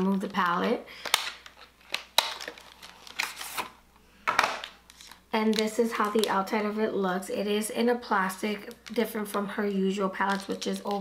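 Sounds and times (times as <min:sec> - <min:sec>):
plastic scraping and rustling: 0:00.0 - 0:06.4, 0:10.2 - 0:11.0.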